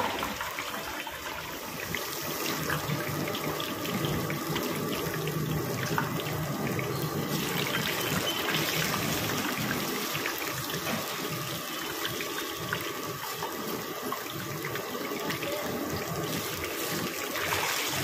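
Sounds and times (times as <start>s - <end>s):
batter deep-frying in oil: 0.0s - 18.0s.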